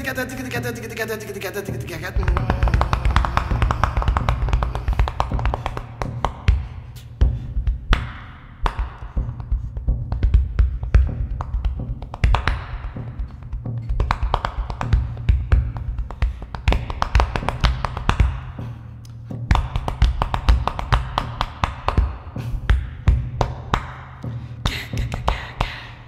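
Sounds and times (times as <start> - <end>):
hands slapping chest: 2.2 - 25.8.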